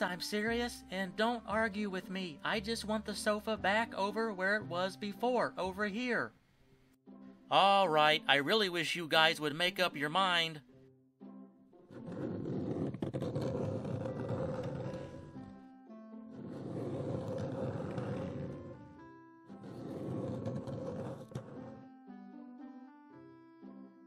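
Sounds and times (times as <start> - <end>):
light background music: 0.0 - 24.0
sofa scraping across floor: 11.9 - 15.4, 16.3 - 18.9, 19.5 - 21.9.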